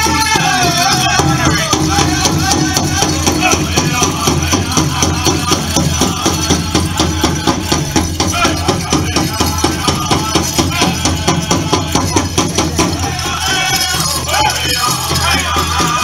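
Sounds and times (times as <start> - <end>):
fast beat on large drum: 0.0 - 16.0
jingling dance bells: 0.0 - 16.0
people singing: 0.0 - 16.0.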